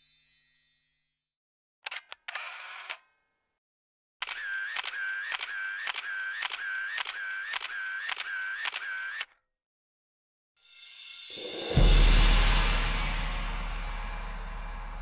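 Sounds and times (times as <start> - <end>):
camera shutter clicks: 1.9 - 3.0, 4.2 - 9.3
camera wind-on burst: 1.9 - 3.0, 4.2 - 9.3.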